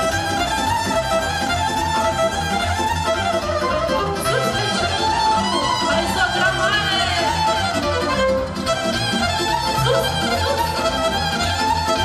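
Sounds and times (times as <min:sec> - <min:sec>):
fast lead melody: 0:00.0 - 0:12.0.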